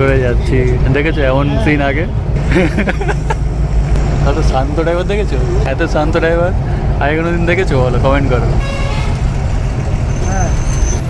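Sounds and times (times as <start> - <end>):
people talking: 0.0 - 3.0, 4.2 - 8.6
diesel bus engine rumble: 0.0 - 11.0
road noise: 0.0 - 11.0.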